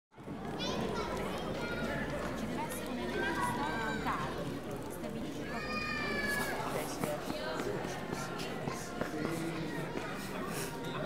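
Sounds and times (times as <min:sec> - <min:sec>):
children calling: 0:00.4 - 0:07.2.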